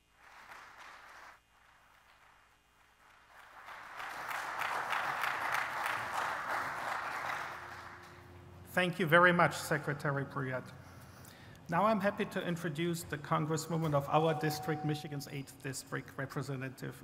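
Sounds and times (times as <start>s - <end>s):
audience applause: 0.0s - 8.3s.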